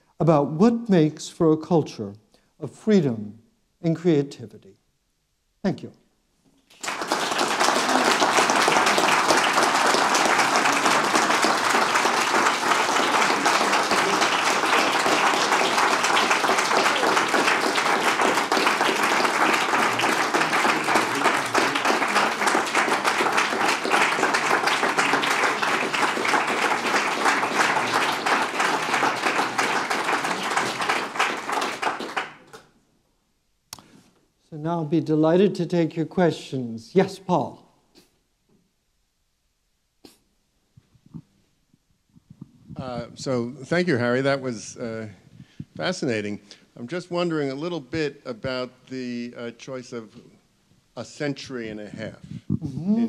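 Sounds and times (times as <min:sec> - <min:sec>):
audience applauding: 0:06.7 - 0:32.6.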